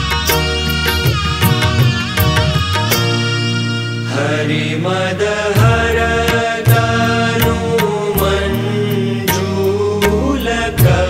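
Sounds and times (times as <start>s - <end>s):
steady percussion beat: 0.0s - 3.5s, 5.6s - 11.0s
devotional chanting: 4.0s - 11.0s.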